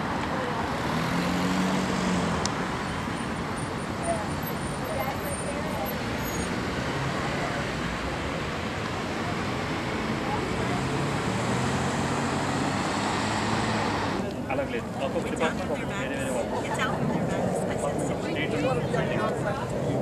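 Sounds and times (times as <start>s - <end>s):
road traffic rumble: 0.0s - 20.0s
faint voices: 3.5s - 20.0s.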